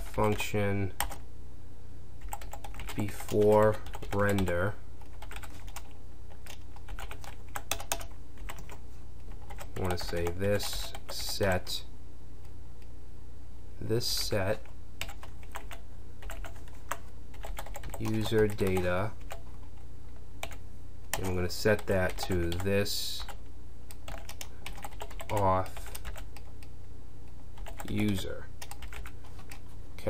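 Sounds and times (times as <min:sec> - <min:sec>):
computer keyboard typing: 0:00.0 - 0:00.4, 0:01.0 - 0:01.2, 0:02.2 - 0:11.6, 0:14.6 - 0:19.8, 0:20.4 - 0:26.7, 0:27.6 - 0:29.6
steady low hum: 0:00.0 - 0:30.0.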